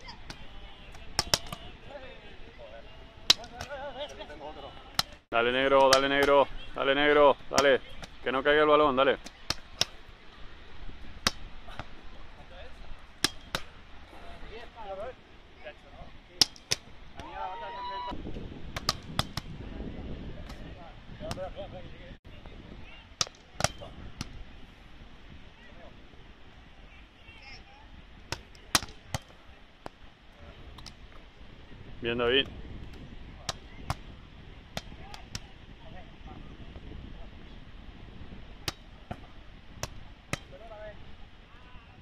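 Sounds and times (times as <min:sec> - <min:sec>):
volleyball slaps: 0:00.2 - 0:01.7, 0:03.2 - 0:03.8, 0:04.9 - 0:05.2, 0:05.8 - 0:06.4, 0:09.2 - 0:10.0, 0:11.2 - 0:11.9, 0:13.1 - 0:13.8, 0:16.4 - 0:17.4, 0:18.7 - 0:19.6, 0:20.4 - 0:21.6, 0:23.2 - 0:24.4, 0:28.2 - 0:30.0, 0:30.7 - 0:31.2, 0:32.4 - 0:35.5, 0:38.6 - 0:40.6.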